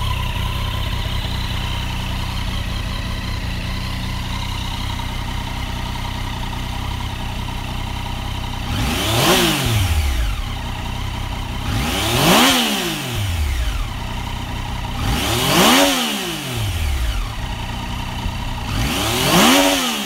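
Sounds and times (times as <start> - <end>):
motorcycle engine idling and revving: 0.0 - 20.0.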